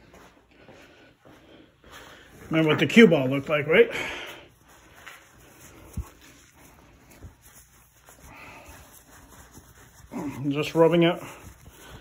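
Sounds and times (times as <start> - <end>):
towel rubbing a pool ball: 2.5 - 12.0.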